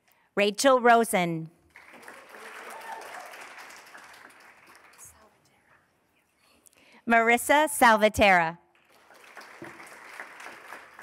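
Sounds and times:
audience applause in hall: 1.7s - 5.3s, 8.8s - 11.0s.

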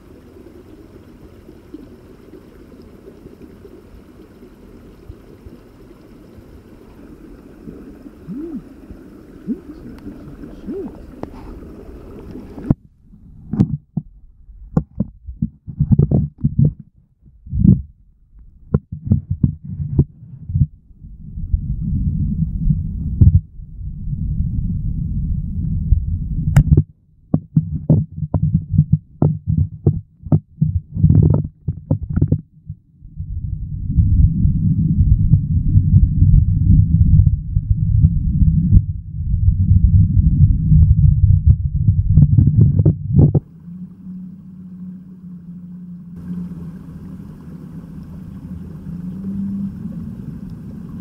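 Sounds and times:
muffled underwater stream rumble: 0.0s - 51.0s.

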